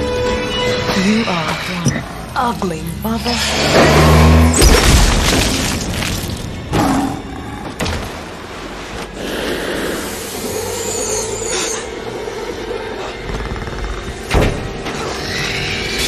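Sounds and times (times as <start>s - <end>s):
dramatic film score: 0.0s - 16.0s.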